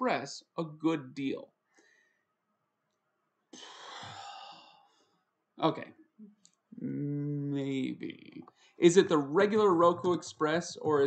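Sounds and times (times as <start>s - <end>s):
man sighing: 3.6s - 4.8s.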